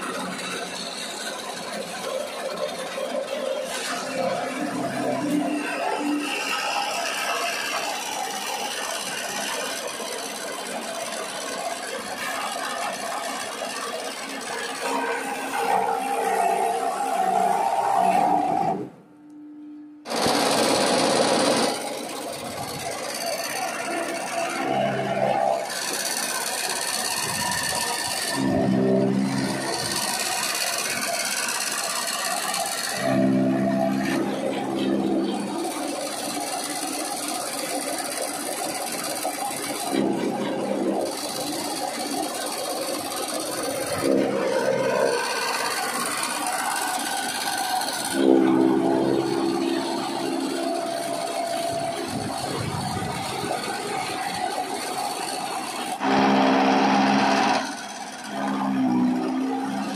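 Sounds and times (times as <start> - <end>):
chaff cutter chopping fodder: 20.1 - 59.9.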